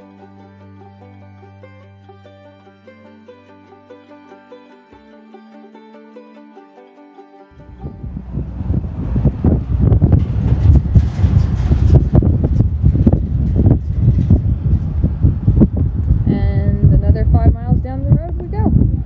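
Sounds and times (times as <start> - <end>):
wind buffeting microphone: 7.6 - 19.0.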